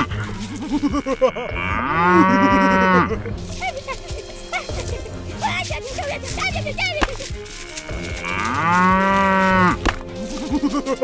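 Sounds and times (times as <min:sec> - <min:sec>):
cow mooing: 0:00.0 - 0:03.3, 0:07.6 - 0:11.0.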